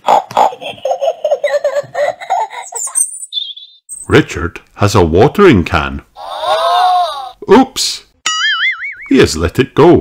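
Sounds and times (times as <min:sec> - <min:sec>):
child giggling: 0:00.3 - 0:03.2.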